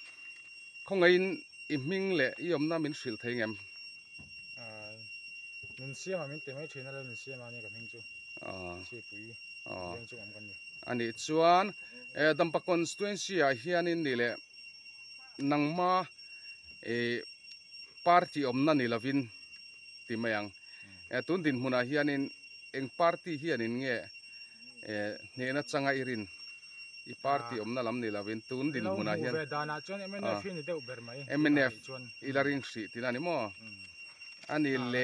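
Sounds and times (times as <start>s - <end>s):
man speaking a syllable: 5.8s - 12.5s, 27.2s - 33.6s, 34.5s - 35.0s
man talking: 5.8s - 14.4s, 27.1s - 33.6s, 34.5s - 35.0s
drawn-out voiced sound: 28.7s - 29.4s.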